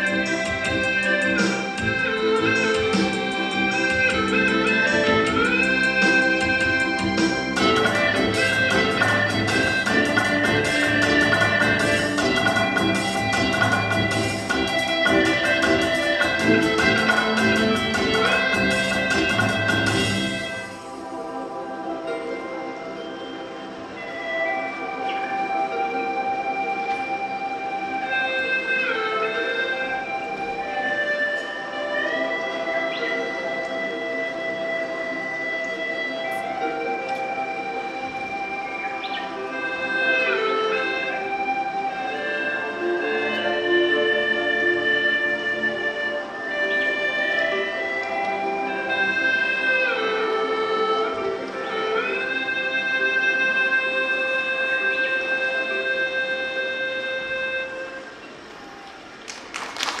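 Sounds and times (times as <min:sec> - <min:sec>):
gourd flutes playing slow melody: 0:00.0 - 0:59.3
audience applause: 0:58.6 - 1:00.0.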